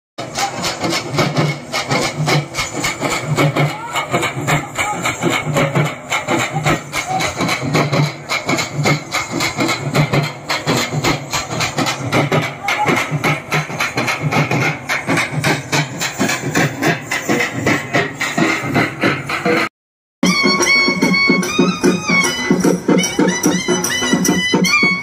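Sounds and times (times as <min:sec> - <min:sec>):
folk drummers playing: 0:00.2 - 0:25.0.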